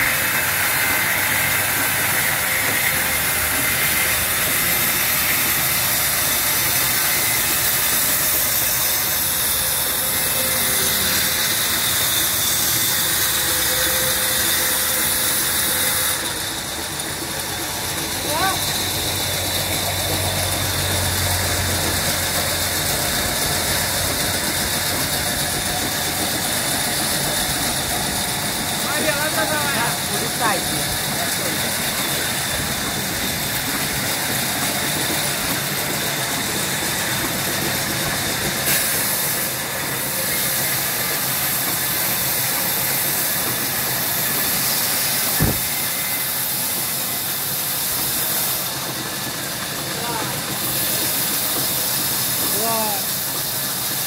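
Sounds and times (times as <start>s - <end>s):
band saw cutting wood: 0.0s - 54.0s.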